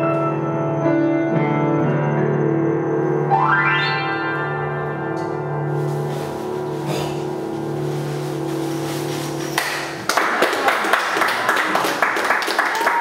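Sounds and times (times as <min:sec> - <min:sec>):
low piano chord ringing: 0:00.0 - 0:09.6
audience applause: 0:09.6 - 0:13.0.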